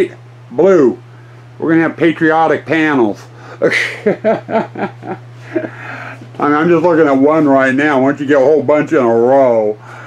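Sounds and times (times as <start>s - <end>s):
man chuckling: 3.4s - 6.3s.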